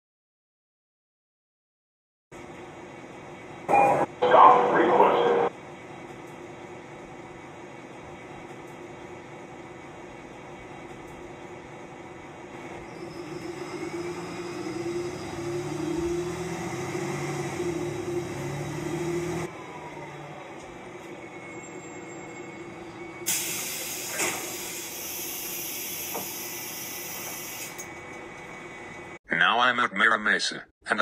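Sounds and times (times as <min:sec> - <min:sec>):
bus engine and road noise: 0:02.4 - 0:29.2
faint rising whine: 0:06.7 - 0:23.3.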